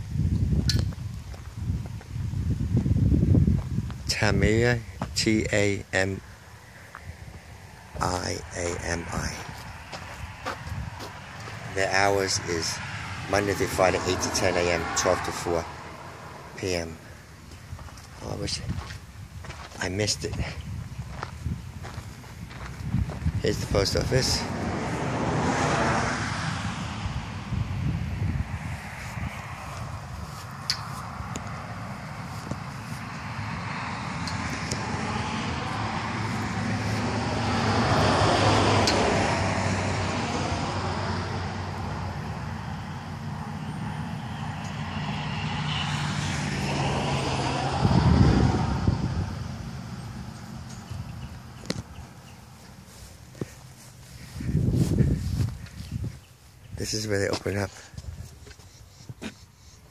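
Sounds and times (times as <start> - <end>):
low engine hum: 0.0 - 58.4
highway traffic passing: 0.0 - 59.9.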